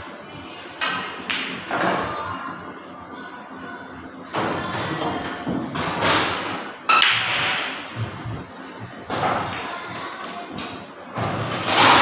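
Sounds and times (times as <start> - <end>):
pool balls scattering: 10.7 - 12.0.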